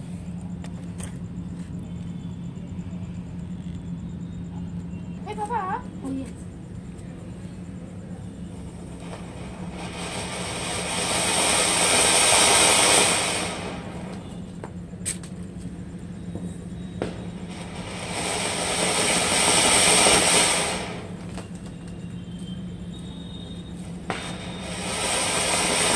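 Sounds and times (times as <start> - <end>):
firework fountain hissing: 5.2 - 25.9.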